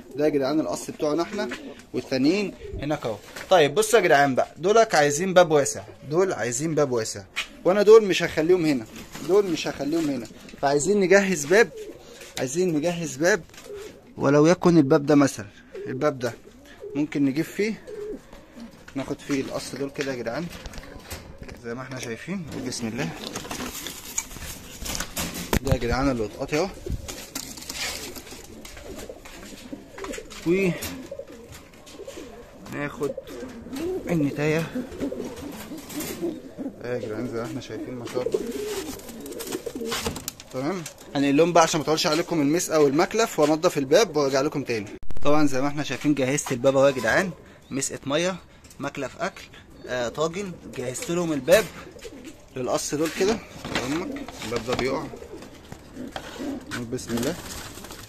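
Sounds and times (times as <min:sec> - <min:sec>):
pigeons cooing: 0:00.0 - 0:45.0, 0:46.0 - 0:58.0
feathers rustling: 0:22.6 - 0:40.2.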